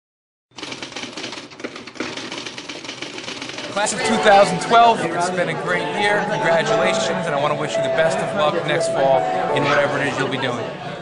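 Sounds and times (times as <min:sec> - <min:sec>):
film projector clatter: 0:00.6 - 0:04.0.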